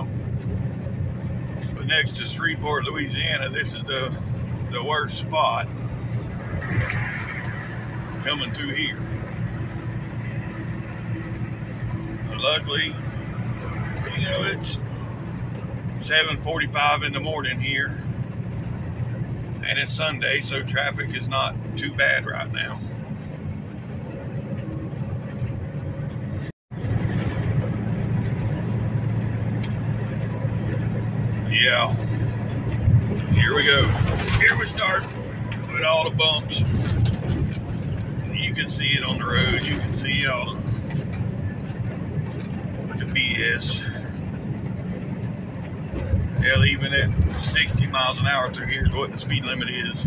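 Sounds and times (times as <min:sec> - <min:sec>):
truck engine and road drone: 0:00.0 - 0:50.0.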